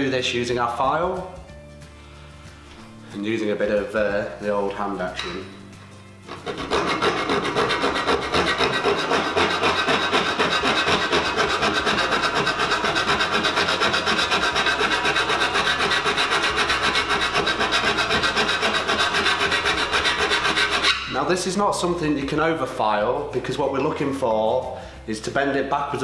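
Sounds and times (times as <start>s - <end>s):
hand file rasping on metal: 6.3s - 21.2s.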